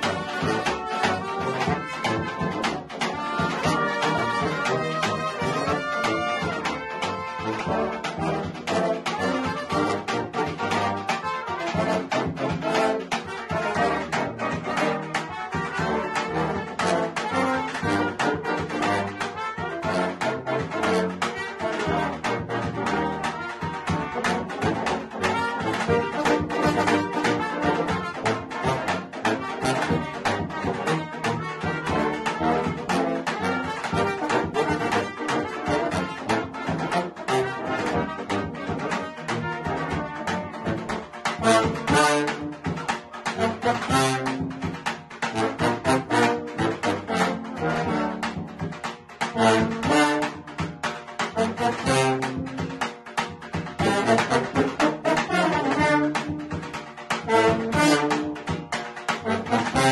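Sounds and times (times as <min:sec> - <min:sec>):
large bass drum beats: 0:00.0 - 0:59.9
trumpets and tenor horns: 0:00.0 - 0:59.9
tuba bass line: 0:00.0 - 0:59.9.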